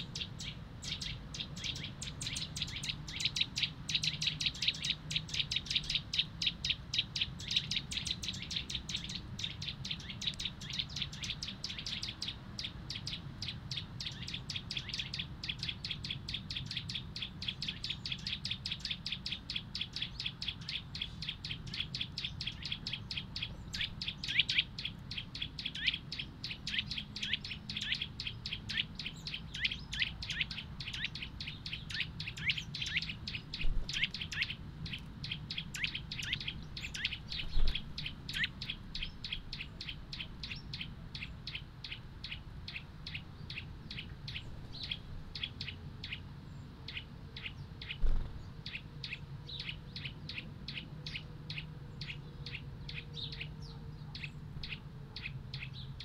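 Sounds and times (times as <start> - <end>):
songbird chirping: 0.0 - 56.0.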